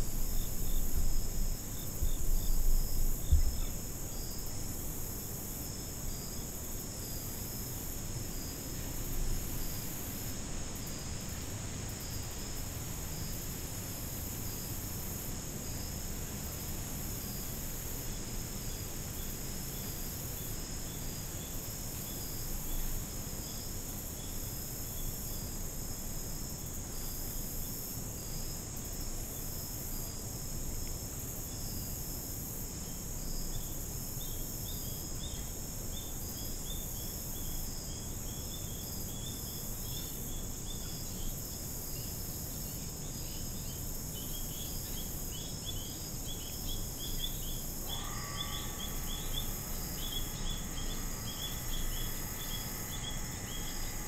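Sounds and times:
insects trilling: 0.0 - 54.0.

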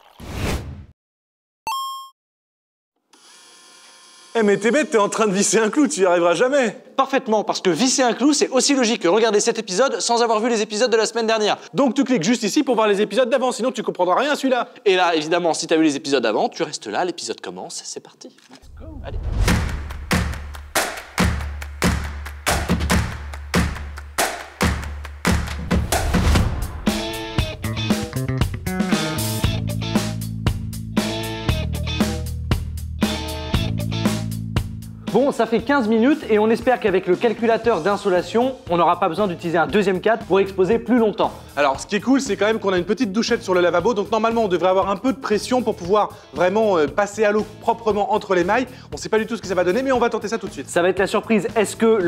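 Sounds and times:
cordless drill driving a nail: 3.1 - 4.4
steady drum beat: 18.8 - 34.9.

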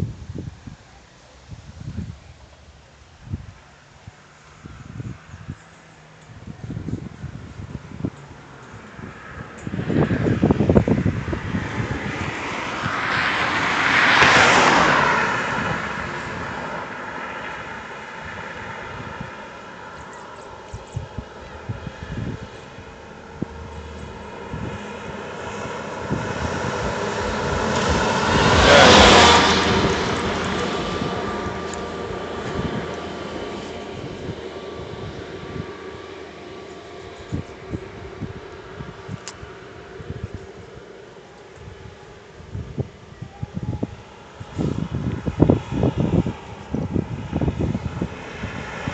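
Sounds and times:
cars passing: 1.9 - 48.9.

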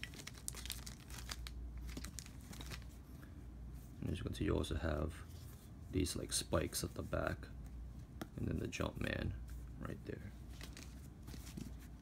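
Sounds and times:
plastic bag crinkling: 0.0 - 3.0, 10.6 - 11.6.

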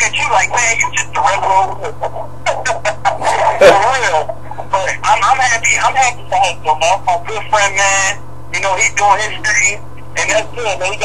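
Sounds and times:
men talking over phone line: 0.0 - 11.0
steady low hum: 0.0 - 11.0
drawn-out vocal sound: 3.0 - 3.8.

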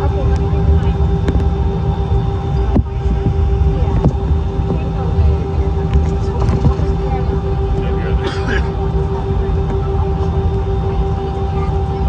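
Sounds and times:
aircraft cabin engine rumble: 0.0 - 12.0
constant hum: 0.0 - 12.0.

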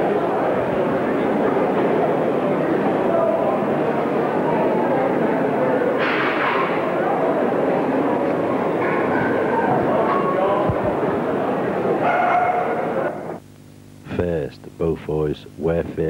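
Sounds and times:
crowd chatter: 0.0 - 13.4
dogs barking and yipping: 12.0 - 13.4.

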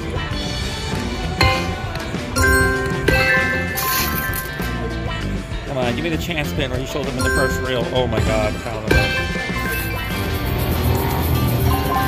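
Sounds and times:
electronic slot machine music: 1.3 - 12.0
chiming tones: 1.4 - 5.3, 7.2 - 10.2.

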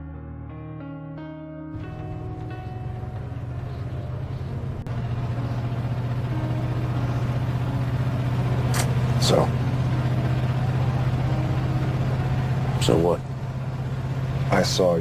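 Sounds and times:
car engine rumble: 1.8 - 15.0
road noise inside car: 1.8 - 15.0.

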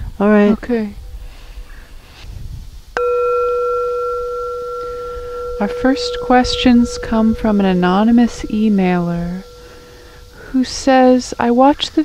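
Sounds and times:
singing bowl ringing: 3.0 - 12.0.

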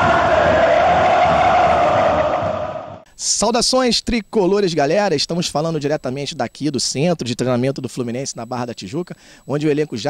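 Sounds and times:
crowd chanting in unison: 0.0 - 3.1.

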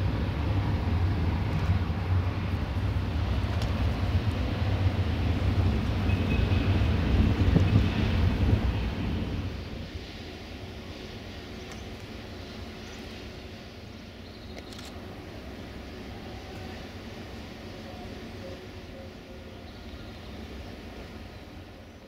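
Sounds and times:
wind buffeting microphone: 0.0 - 10.4.

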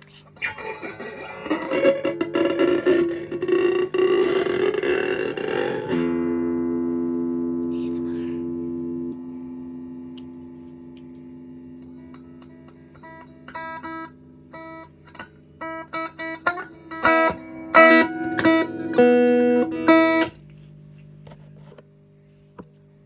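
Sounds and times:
distorted electric guitar strumming: 0.3 - 20.6.

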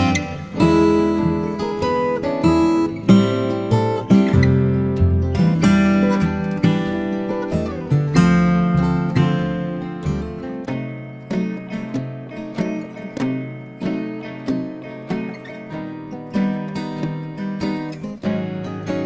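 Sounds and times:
upbeat acoustic guitar music: 0.0 - 19.0.

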